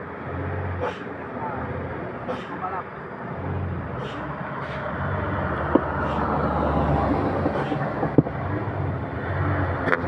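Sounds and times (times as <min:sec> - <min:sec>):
truck engines droning: 0:00.0 - 0:10.0.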